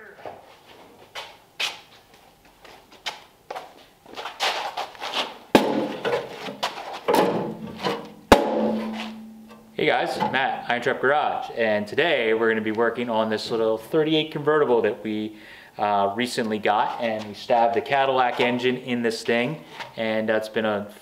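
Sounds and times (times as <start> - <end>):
metal panel knocks and clanks: 7.1 - 9.6
sharp metal bangs: 7.1 - 9.8.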